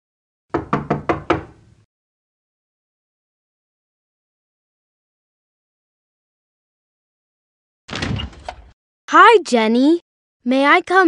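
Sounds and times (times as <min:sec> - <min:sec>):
knocks on wooden door: 0:00.5 - 0:01.6.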